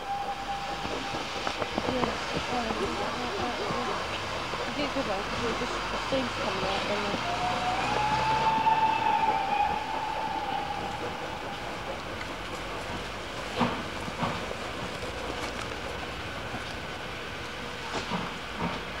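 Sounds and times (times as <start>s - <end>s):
steam locomotive whistle: 0.0s - 2.0s, 6.5s - 12.8s
steam train running: 0.0s - 19.0s.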